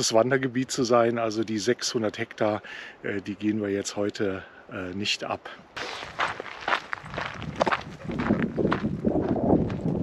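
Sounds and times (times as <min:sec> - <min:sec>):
footsteps on hiking path: 0:05.8 - 0:10.0.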